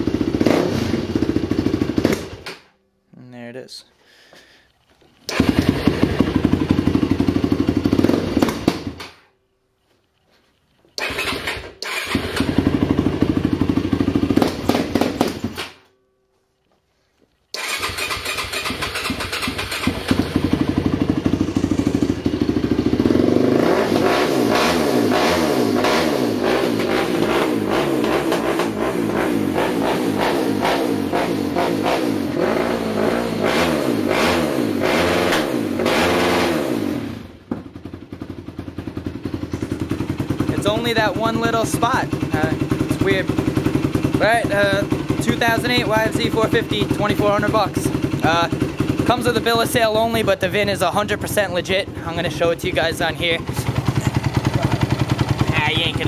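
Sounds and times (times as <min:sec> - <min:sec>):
engine revving: 0:00.0 - 0:02.4, 0:05.3 - 0:09.0, 0:11.0 - 0:15.6, 0:17.5 - 0:37.5, 0:38.8 - 0:56.0
engine starting and stalling: 0:00.0 - 0:02.7, 0:05.1 - 0:09.3, 0:10.9 - 0:15.8, 0:17.5 - 0:28.9, 0:34.2 - 0:56.0.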